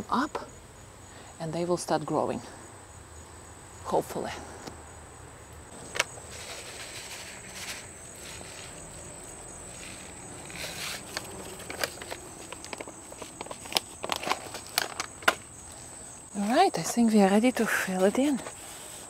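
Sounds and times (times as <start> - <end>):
gloved hands rustling in soil: 5.7 - 16.8.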